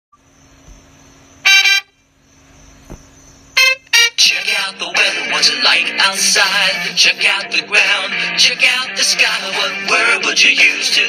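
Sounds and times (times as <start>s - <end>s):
faint steady hum: 0.2s - 11.0s.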